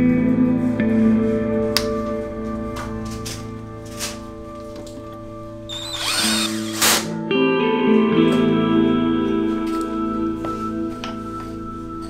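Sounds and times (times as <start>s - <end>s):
background music: 0.0s - 12.0s
electric screwdriver whirring: 5.7s - 7.1s.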